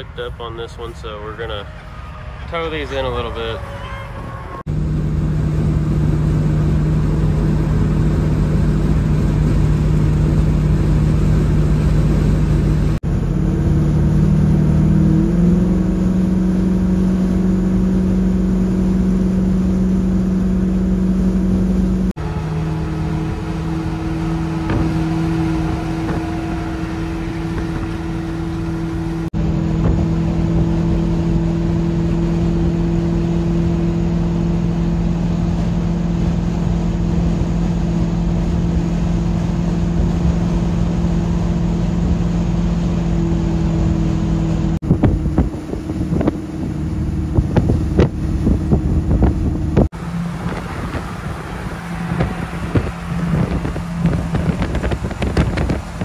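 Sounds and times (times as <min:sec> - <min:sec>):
engine and road noise in cab: 0:00.0 - 0:56.0.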